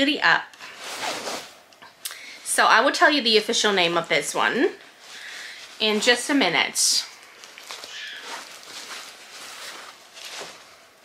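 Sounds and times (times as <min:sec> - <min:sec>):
basket bag rustling: 0:00.7 - 0:01.6, 0:04.9 - 0:11.0.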